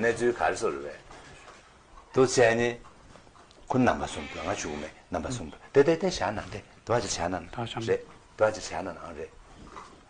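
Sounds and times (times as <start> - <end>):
man talking: 0.0 - 1.1, 2.1 - 2.9, 3.7 - 9.4.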